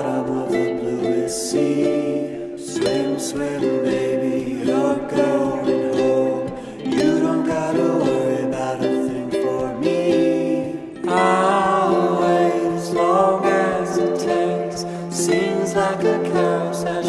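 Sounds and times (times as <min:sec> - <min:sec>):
acoustic folk music: 0:00.0 - 0:17.0.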